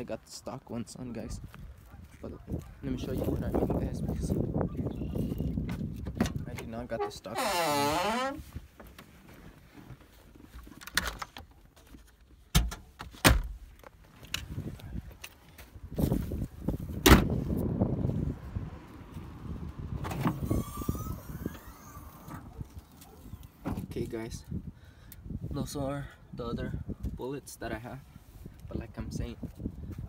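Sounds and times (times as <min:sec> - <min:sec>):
car doors opening and shutting: 0:12.5 - 0:13.6, 0:16.9 - 0:17.4, 0:19.9 - 0:23.9.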